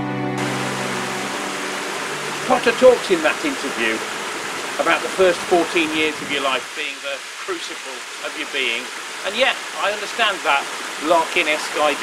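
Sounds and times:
background music with held notes: 0.0 - 3.7
water rushing over waterfall: 0.4 - 12.0.

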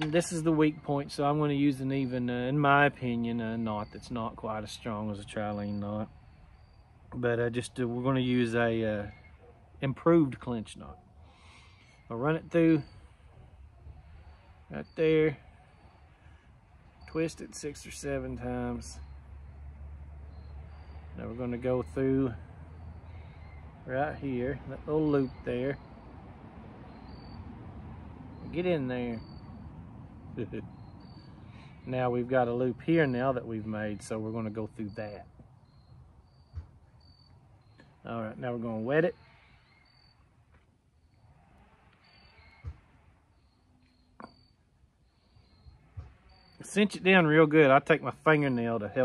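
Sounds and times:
high insect chirps: 0.6 - 9.4, 11.3 - 32.0, 32.9 - 38.2, 39.1 - 47.3.

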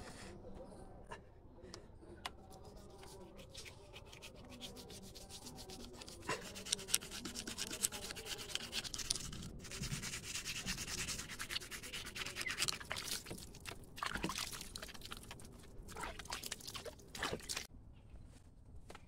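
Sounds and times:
toothbrush scrubbing teeth: 2.5 - 17.7.

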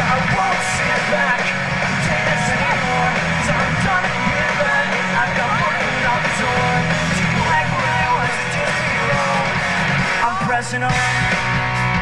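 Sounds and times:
crowd noise: 0.0 - 12.0
electric guitar: 0.0 - 12.0
live rock band playing: 0.0 - 12.0.

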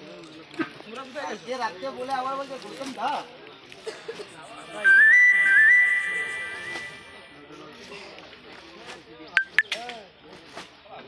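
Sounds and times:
high whistle-like tone: 4.6 - 7.4.

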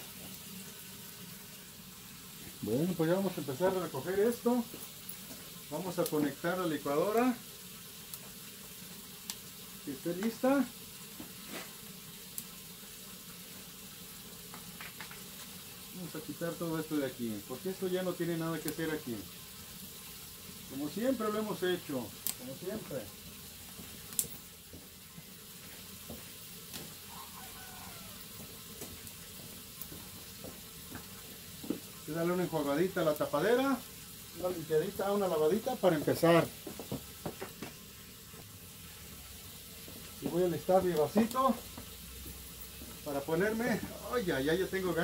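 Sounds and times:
steady background hiss: 0.0 - 45.0.

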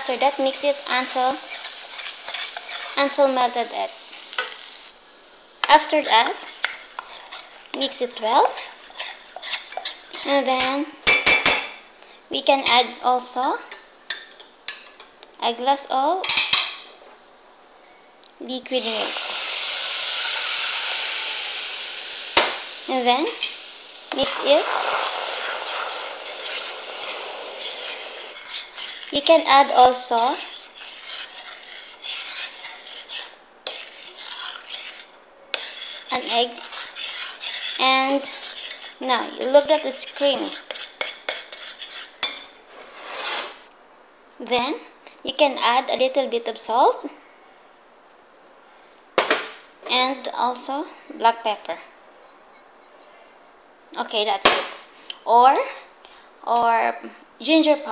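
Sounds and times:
milk sizzling in hot pan: 0.0 - 43.7.

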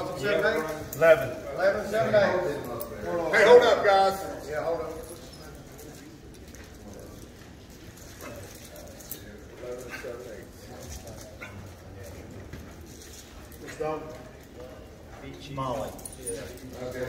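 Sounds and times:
low background murmur: 0.0 - 17.0.

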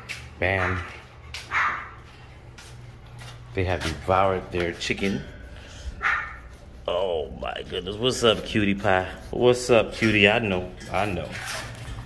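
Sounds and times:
low hum of fans: 0.0 - 12.0
puppy yipping: 1.5 - 2.0.

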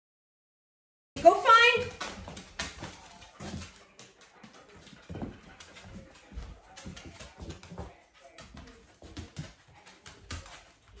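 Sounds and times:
dog nails clicking on floor: 1.8 - 11.0.

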